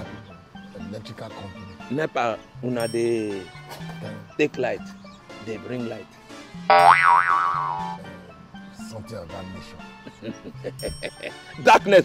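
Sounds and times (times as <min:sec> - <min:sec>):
quiet background music: 0:00.0 - 0:12.0.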